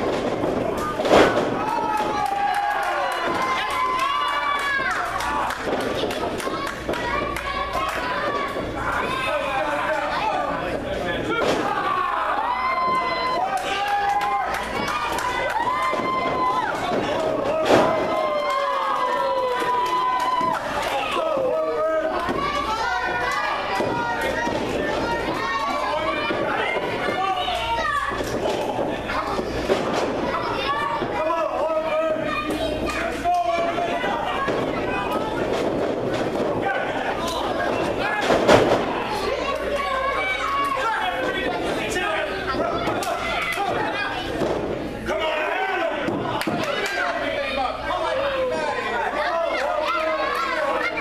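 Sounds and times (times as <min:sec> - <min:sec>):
murmur of small crowd: 0:00.0 - 0:51.0.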